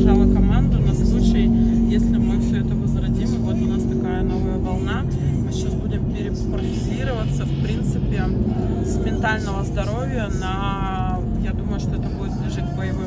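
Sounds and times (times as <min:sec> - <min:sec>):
car cabin road rumble: 0:00.0 - 0:13.0
voices: 0:00.0 - 0:13.0.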